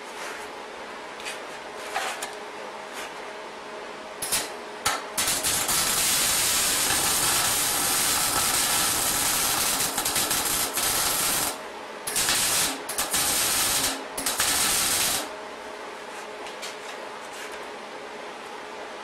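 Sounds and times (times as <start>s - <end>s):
welder arc crackling and hissing: 4.2s - 15.3s.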